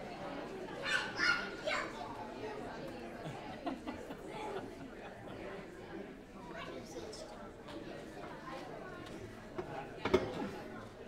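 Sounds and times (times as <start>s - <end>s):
crowd of people chatting: 0.0s - 11.0s
children's voices: 0.6s - 2.3s.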